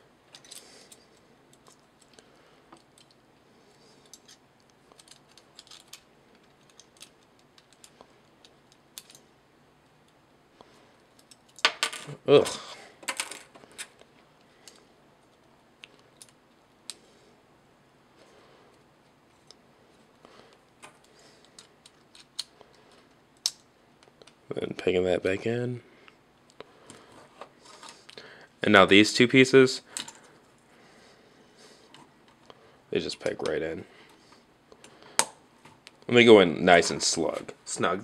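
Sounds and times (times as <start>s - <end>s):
plastic toy parts clicking: 5.0s - 9.2s.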